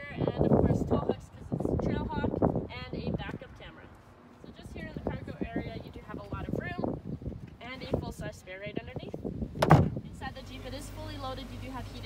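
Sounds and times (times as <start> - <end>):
woman talking: 0.0 - 7.0, 7.6 - 9.2, 10.0 - 12.0
loud thump of cargo area shut: 9.6 - 10.0.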